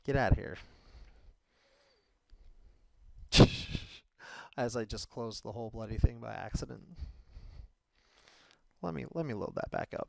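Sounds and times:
sharp breath into microphone: 0:00.6 - 0:02.7, 0:07.0 - 0:08.6
man bursting into laughter: 0:03.3 - 0:04.1.

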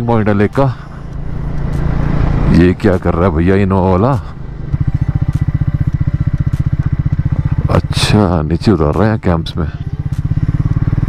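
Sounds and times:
motorcycle engine thumping: 0:03.9 - 0:09.3, 0:09.9 - 0:11.0.

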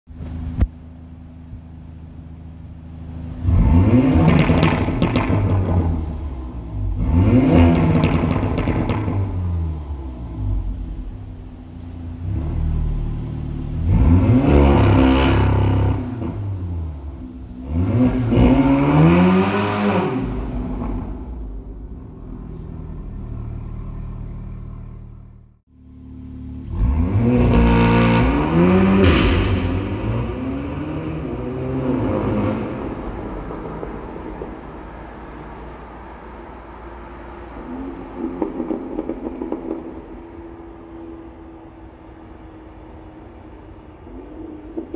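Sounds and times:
car engine accelerating in tunnel: 0:00.1 - 0:44.9.

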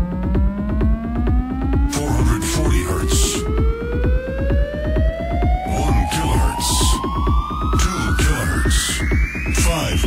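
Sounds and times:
driving trance beat with kick: 0:00.0 - 0:10.0.

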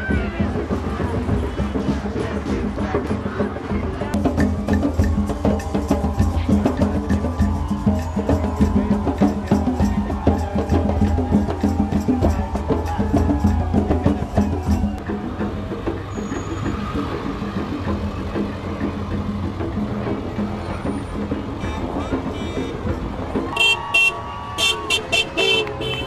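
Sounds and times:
crowd noise: 0:00.0 - 0:26.0
traffic: 0:00.0 - 0:26.0
car horn blast: 0:23.6 - 0:26.0.

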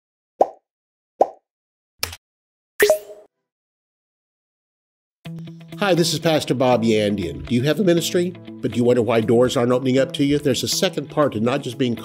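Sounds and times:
pop sound effects: 0:02.8 - 0:03.3.

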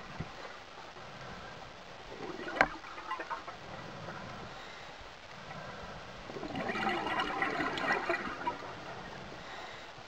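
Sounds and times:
underwater background noise: 0:00.0 - 0:10.0
gas bubbles gurgling underwater: 0:01.9 - 0:04.2, 0:05.4 - 0:09.6.

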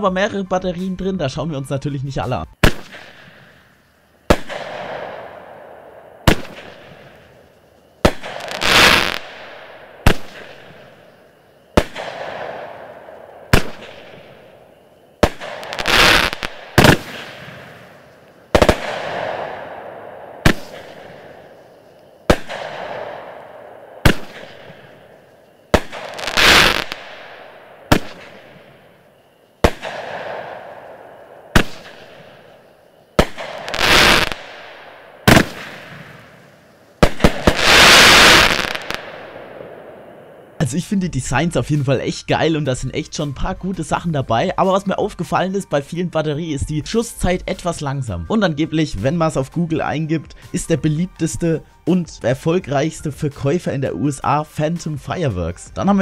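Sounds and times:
firework bangs and hiss: 0:02.6 - 0:40.4.

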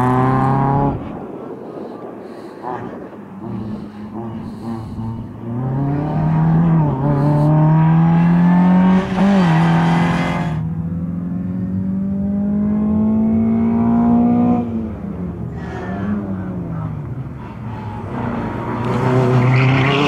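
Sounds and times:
car engine revving: 0:00.0 - 0:01.2, 0:02.3 - 0:20.0.

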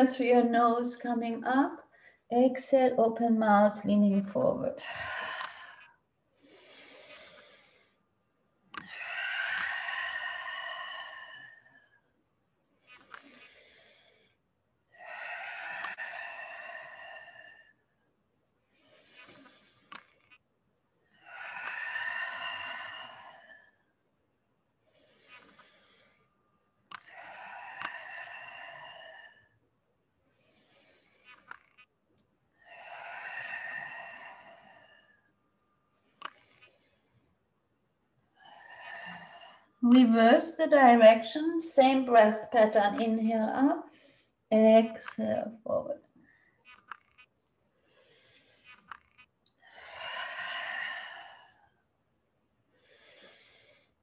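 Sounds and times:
woman breathing in: 0:04.8 - 0:08.1, 0:08.8 - 0:12.1, 0:15.0 - 0:18.0, 0:18.7 - 0:20.4, 0:21.2 - 0:24.0, 0:24.8 - 0:29.6, 0:32.6 - 0:37.4, 0:38.3 - 0:39.8, 0:46.2 - 0:52.0, 0:52.8 - 0:54.0.

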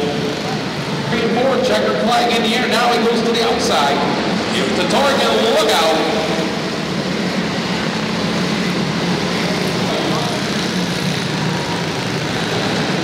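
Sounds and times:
race car engines droning: 0:00.0 - 0:13.0.

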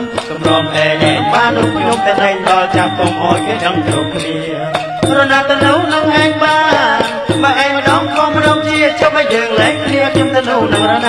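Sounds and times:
men singing into microphones: 0:00.0 - 0:11.0
percussion strokes: 0:00.0 - 0:11.0
traditional music band: 0:00.0 - 0:11.0.

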